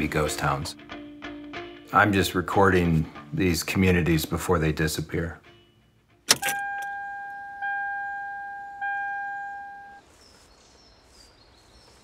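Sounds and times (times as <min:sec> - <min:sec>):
car warning chime: 0:06.3 - 0:10.0.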